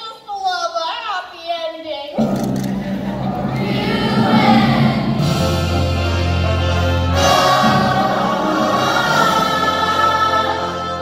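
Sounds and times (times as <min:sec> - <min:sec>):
cast singing in chorus over music: 0:02.2 - 0:11.0.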